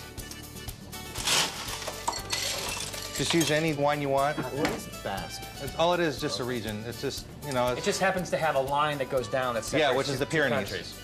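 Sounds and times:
ice cubes clinking into glass: 1.1s - 3.8s.

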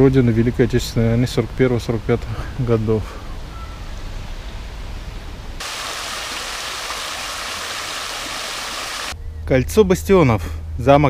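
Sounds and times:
fountain splashing into basin: 5.6s - 9.2s.

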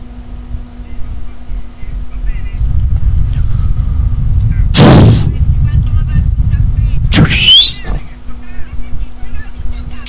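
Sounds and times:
steady low rumble: 0.0s - 10.0s
sudden burst of noise: 4.7s - 5.4s.

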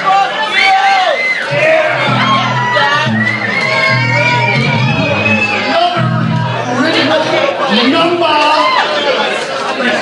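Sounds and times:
crowd chatter: 0.0s - 10.0s.

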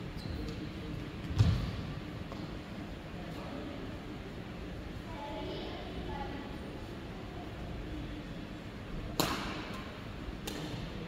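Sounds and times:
racket striking shuttlecock: 9.2s - 9.7s.

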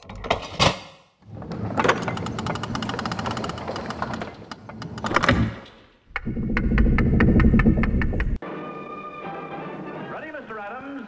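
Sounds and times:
rapid mechanical clatter: 1.9s - 5.2s
low hum: 6.1s - 8.4s.

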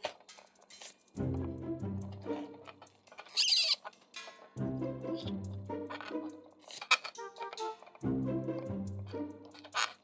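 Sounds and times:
plastic parts scraping: 0.0s - 1.1s, 2.3s - 4.6s, 5.9s - 8.0s, 9.4s - 10.0s.

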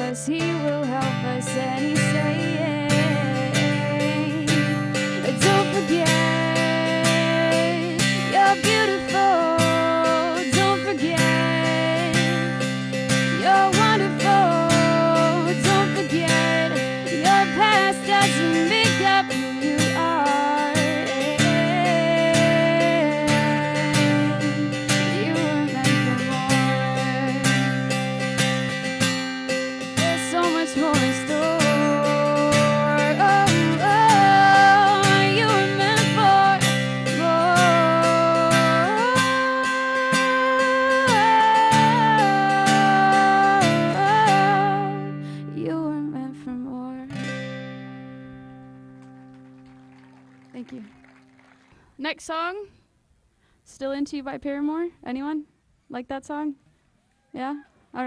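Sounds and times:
woman singing: 0.0s - 28.8s, 29.7s - 47.6s
acoustic guitar strumming chords: 0.0s - 50.3s.

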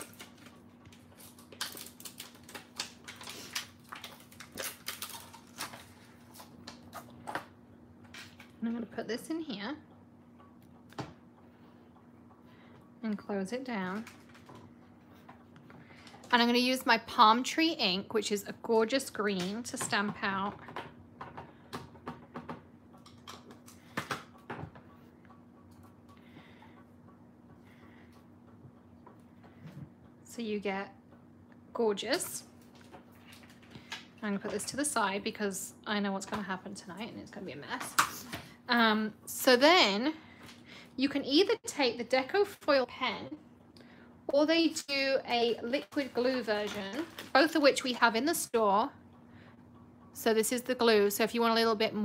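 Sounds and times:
plastic sheet clicks and crinkles: 0.0s - 7.4s
steady low hum: 0.0s - 52.0s.

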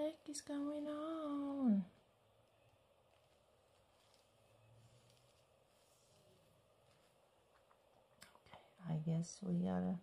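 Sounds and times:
woman speaking: 0.0s - 2.0s, 8.8s - 10.0s.

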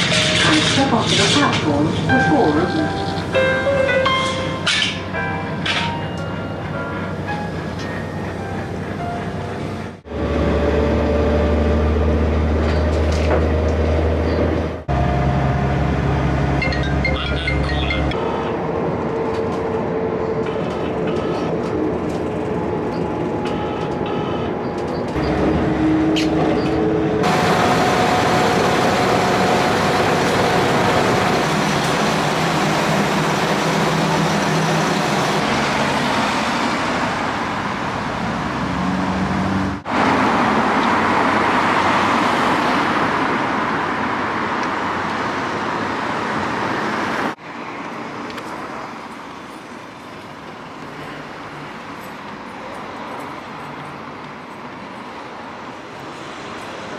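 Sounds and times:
road traffic noise: 0.0s - 56.9s
train rumble: 0.0s - 56.9s.

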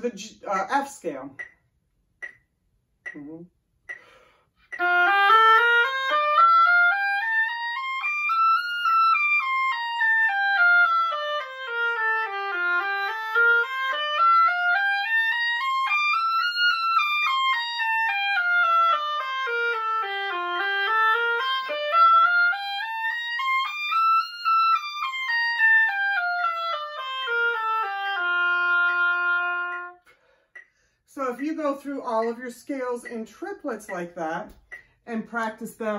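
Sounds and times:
solo oboe playing scales: 4.7s - 30.1s.

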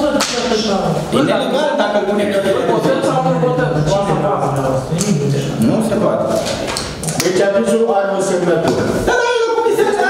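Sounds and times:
people talking: 0.0s - 10.0s
sharp slap crack: 0.1s - 0.6s.

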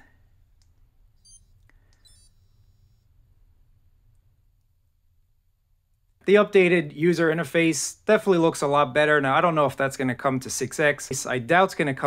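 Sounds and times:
watch beeps: 1.2s - 3.0s.

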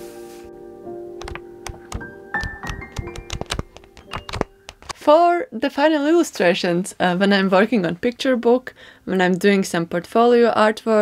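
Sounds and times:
soft background music: 0.0s - 5.7s
paper pages riffled: 2.6s - 5.0s.

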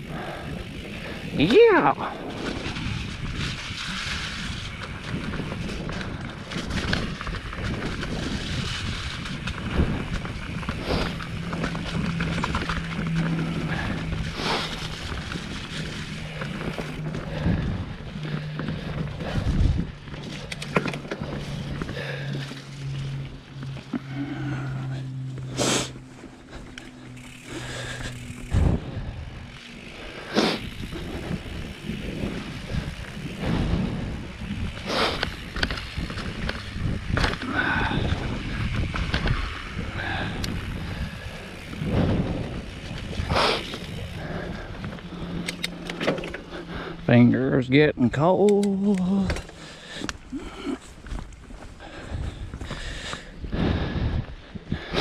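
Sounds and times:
low steady hum: 0.0s - 54.9s
bike tyres on dirt trail: 0.0s - 55.0s
wind on microphone: 0.1s - 22.0s, 28.0s - 29.6s, 30.6s - 45.4s, 50.2s - 55.0s
bike knocks and rattles: 2.3s - 24.0s, 26.2s - 46.7s.

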